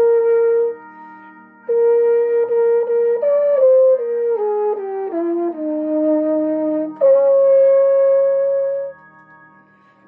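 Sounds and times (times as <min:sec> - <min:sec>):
saxhorn playing hymn melody: 0:00.0 - 0:00.8, 0:01.7 - 0:09.0.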